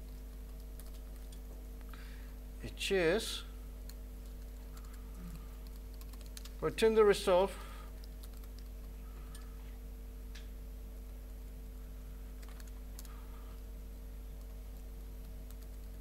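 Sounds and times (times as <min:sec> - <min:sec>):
computer keyboard keystrokes: 0:00.0 - 0:01.4, 0:05.6 - 0:06.6, 0:08.0 - 0:08.7, 0:12.4 - 0:13.2, 0:14.4 - 0:16.0
low electrical hum: 0:00.0 - 0:16.0.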